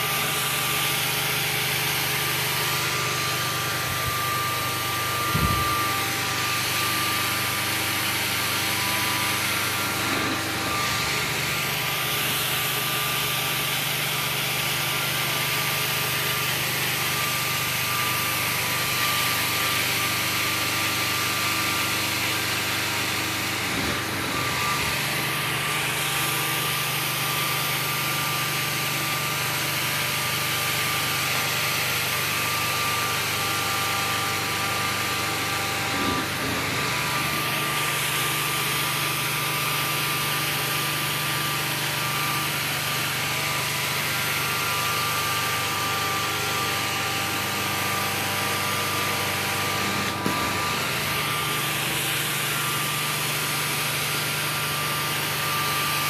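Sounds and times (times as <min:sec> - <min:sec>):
carpet cleaning machine running: 0:00.0 - 0:56.0.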